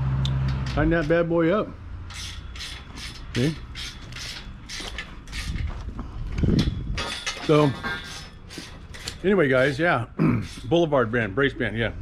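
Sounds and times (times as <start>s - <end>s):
ratchet wrench clicking: 2.1s - 5.6s.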